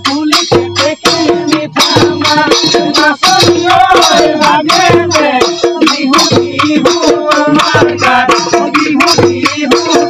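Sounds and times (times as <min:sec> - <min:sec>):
dhol drum strokes: 0:00.0 - 0:10.0.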